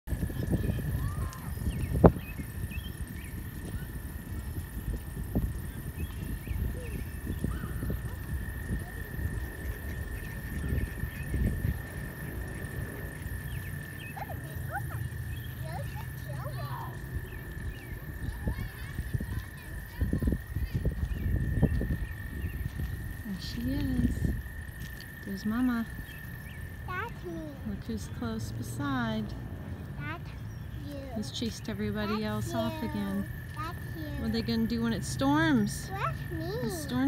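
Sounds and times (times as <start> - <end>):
wind rumbling on microphone: 0.0 - 37.0
chorus of spring peepers: 0.1 - 37.0.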